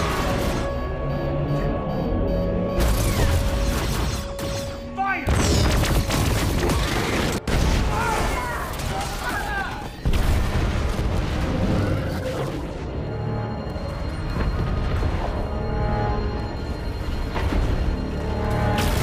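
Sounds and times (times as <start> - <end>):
film score: 0.0 - 19.0
booming explosions: 10.0 - 12.7.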